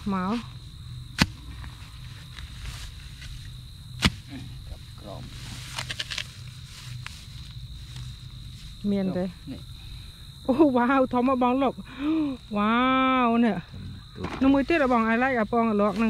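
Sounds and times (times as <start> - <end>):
hands rustling through grass: 1.8 - 3.5, 5.2 - 9.3.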